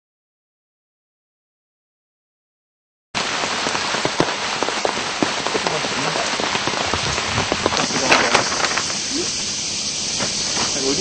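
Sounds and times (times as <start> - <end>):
steady rushing noise: 3.2 - 11.0
crackles and ticks: 3.6 - 9.3.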